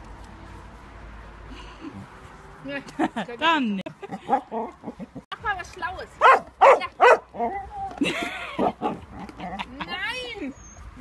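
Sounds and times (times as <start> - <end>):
woman speaking: 2.6 - 3.9, 5.3 - 7.9, 9.6 - 10.6.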